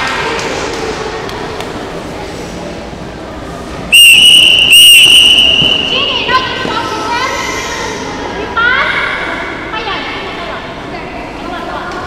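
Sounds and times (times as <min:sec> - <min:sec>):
referee whistle blast: 0:03.9 - 0:06.3.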